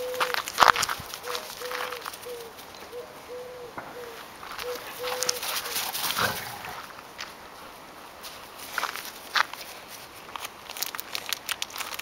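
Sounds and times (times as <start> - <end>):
dogs scuffling: 0.1 - 2.8, 4.4 - 10.4.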